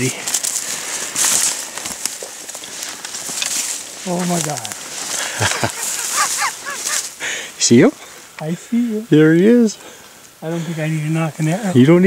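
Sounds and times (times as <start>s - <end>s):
twigs cracking underfoot: 0.0s - 7.3s
leaves brushing against clothing: 0.0s - 12.0s.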